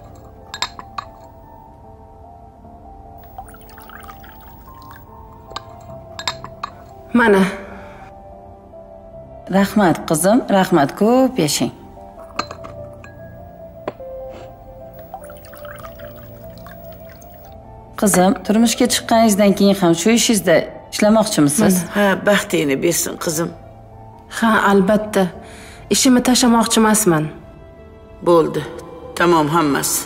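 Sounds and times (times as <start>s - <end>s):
tableware clinking: 0.0s - 1.6s, 3.2s - 7.1s, 12.2s - 14.3s
soft background music: 0.0s - 30.0s.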